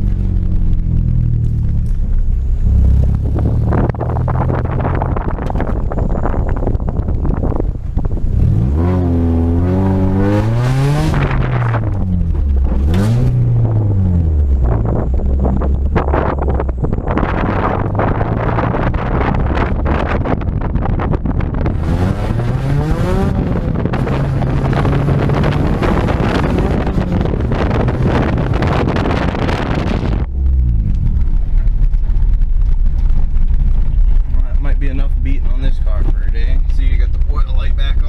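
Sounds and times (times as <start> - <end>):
car engine revving hard: 8.3 - 20.4, 21.6 - 30.9.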